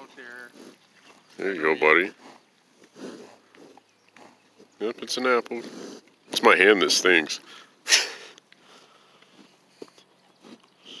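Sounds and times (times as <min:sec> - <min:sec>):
bison sniffing: 0:00.2 - 0:06.7, 0:07.3 - 0:11.0
bison biting an apple: 0:00.5 - 0:01.3, 0:02.1 - 0:04.8, 0:08.4 - 0:11.0.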